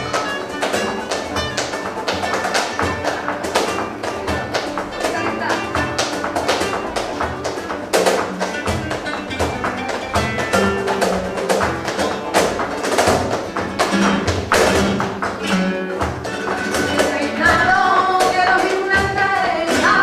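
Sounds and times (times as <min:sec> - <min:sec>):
plucked oud and guitar: 0:00.0 - 0:20.0
sharp hand claps: 0:00.0 - 0:20.0.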